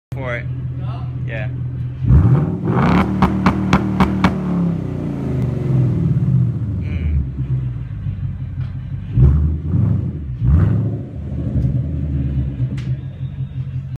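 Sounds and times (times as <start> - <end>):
car engine idling and revving: 0.3 - 14.0
exhaust cracks: 2.1 - 5.8.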